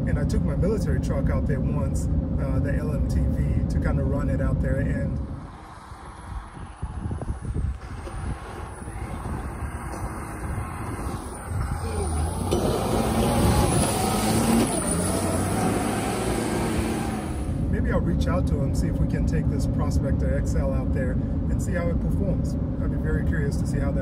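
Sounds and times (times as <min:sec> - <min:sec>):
diesel truck engine: 0:03.2 - 0:19.0.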